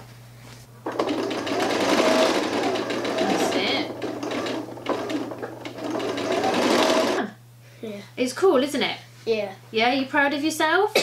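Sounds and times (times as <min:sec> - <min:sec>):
electric sewing machine running: 0:00.8 - 0:07.3.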